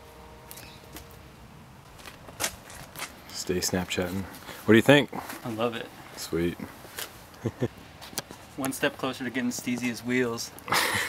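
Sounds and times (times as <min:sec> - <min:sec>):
low background noise: 0:00.0 - 0:11.0.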